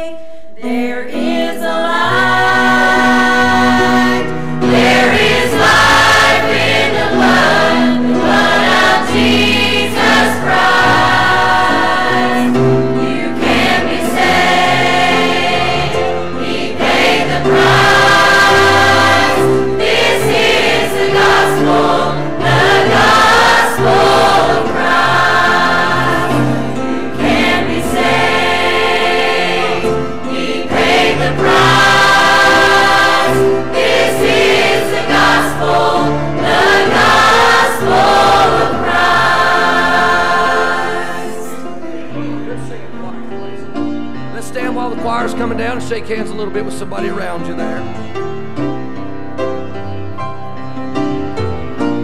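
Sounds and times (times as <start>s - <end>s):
women's choir singing a hymn: 0.0s - 44.5s
instrumental accompaniment: 0.6s - 52.0s.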